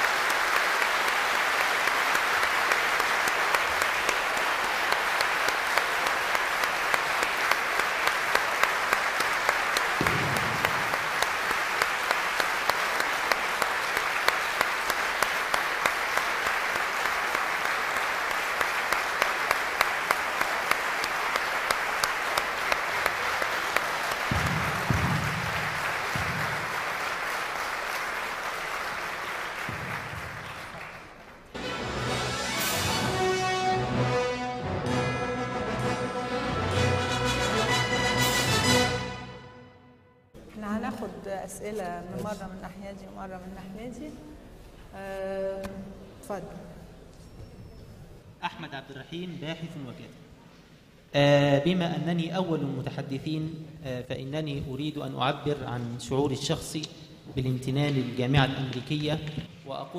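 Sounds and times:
large audience applauding: 0.0 - 39.3.

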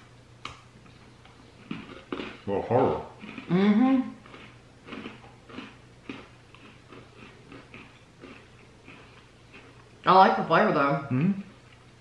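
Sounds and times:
chewing crisp cookies: 0.8 - 10.1.

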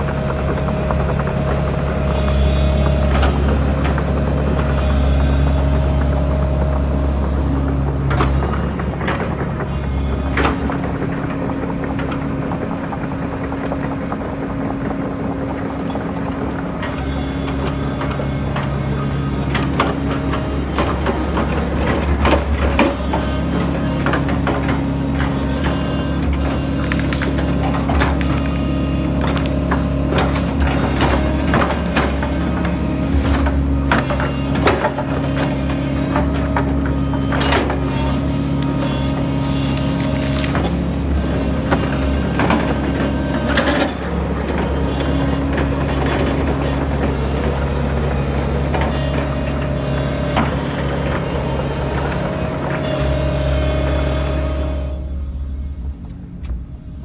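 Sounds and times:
excavator diesel engine running: 0.0 - 57.0
bucket cracking brush and trees: 17.0 - 53.1.

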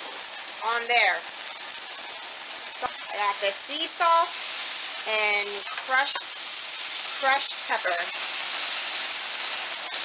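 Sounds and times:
steaks sizzling on grill pan: 0.0 - 10.0.

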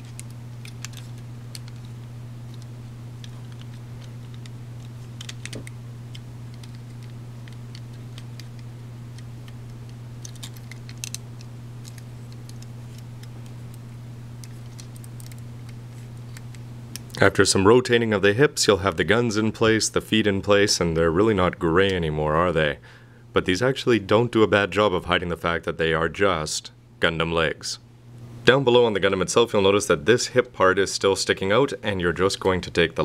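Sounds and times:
plastic parts clicking: 0.0 - 1.9, 2.5 - 13.6, 14.4 - 17.2
low hum: 0.0 - 27.2.

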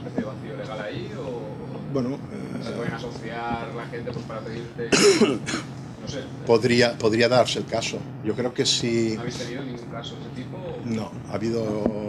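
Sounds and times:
person coughing: 4.9 - 5.7.

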